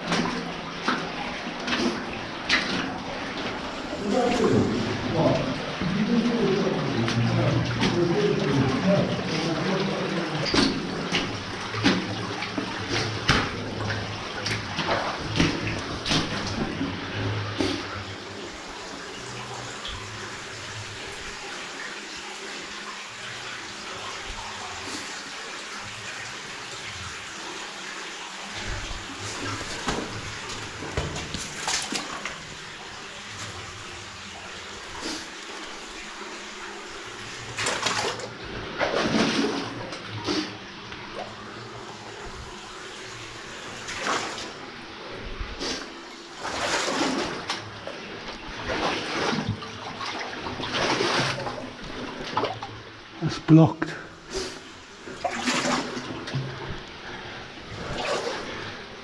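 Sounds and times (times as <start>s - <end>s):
running water: 0.0s - 59.0s
footsteps splashing in water: 29.6s - 32.3s.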